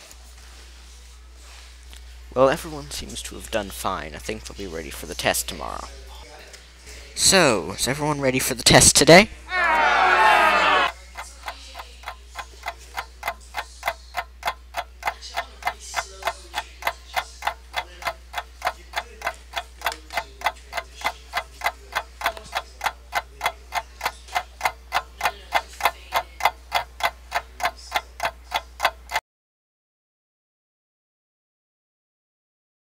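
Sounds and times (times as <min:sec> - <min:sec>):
clock ticking: 0:10.8 - 0:29.2.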